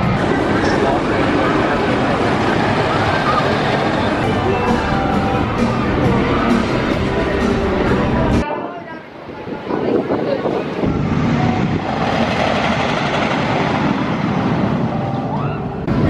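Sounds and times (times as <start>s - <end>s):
roller coaster rumbling on track: 0.0s - 16.0s.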